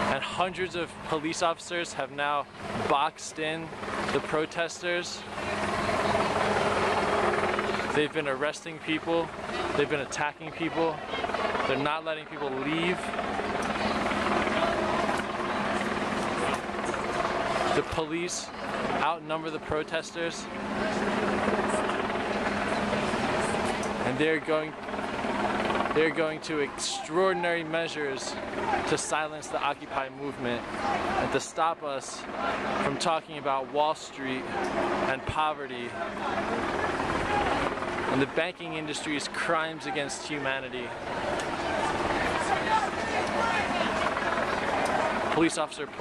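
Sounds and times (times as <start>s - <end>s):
crowd voices: 0.0s - 46.0s.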